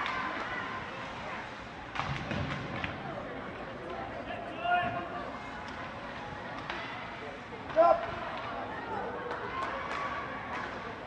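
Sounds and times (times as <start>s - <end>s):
spectators' voices and hubbub: 0.0s - 11.0s
hockey sticks and puck clacking: 1.9s - 3.0s.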